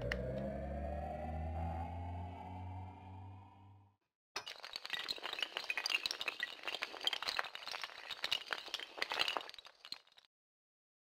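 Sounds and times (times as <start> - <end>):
low drone: 0.0 - 3.9
rising held tone: 0.0 - 3.9.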